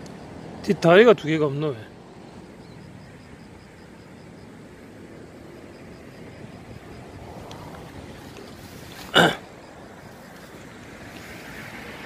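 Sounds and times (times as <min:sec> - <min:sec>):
outdoor background noise: 0:00.0 - 0:12.0
faint high-pitched chirp: 0:02.5 - 0:03.0.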